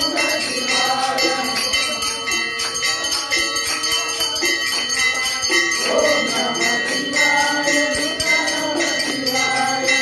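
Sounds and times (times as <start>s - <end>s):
devotional music: 0.0s - 10.0s
small bells and cymbals ringing: 0.0s - 10.0s.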